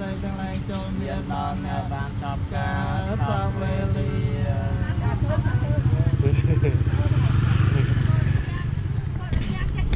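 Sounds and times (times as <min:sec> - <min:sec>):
motor scooter engine passing: 0:01.0 - 0:09.3.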